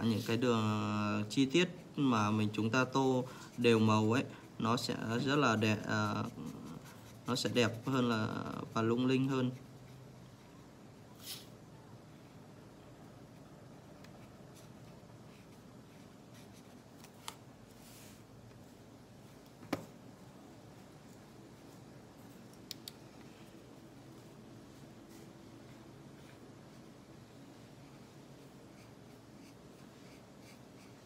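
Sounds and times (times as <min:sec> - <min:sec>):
low room hum: 0:00.0 - 0:31.0
marker scratching on paper: 0:01.4 - 0:10.4, 0:14.0 - 0:17.1, 0:28.7 - 0:31.0.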